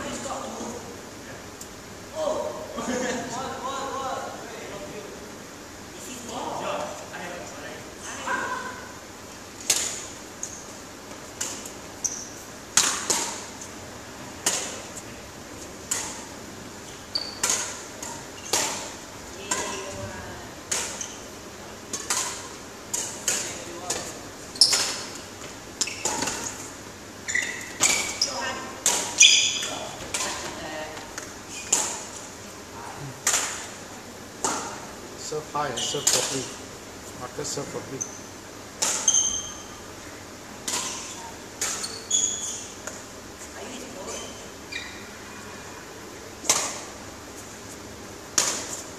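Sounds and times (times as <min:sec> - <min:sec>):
rackets striking shuttlecock: 0:11.4 - 0:13.6, 0:17.2 - 0:19.8, 0:21.9 - 0:24.0, 0:33.2 - 0:33.8, 0:36.0 - 0:36.5, 0:38.7 - 0:39.7, 0:46.4 - 0:47.0, 0:48.3 - 0:48.8.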